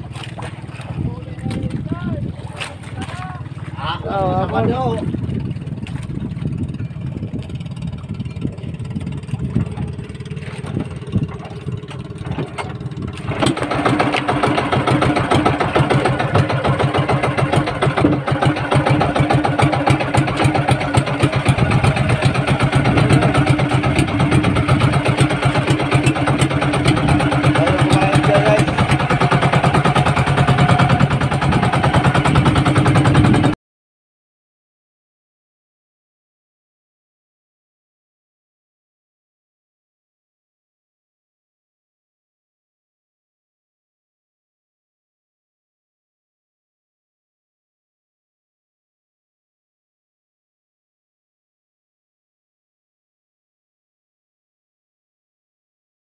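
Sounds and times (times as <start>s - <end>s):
boat engine running: 0.0s - 33.6s.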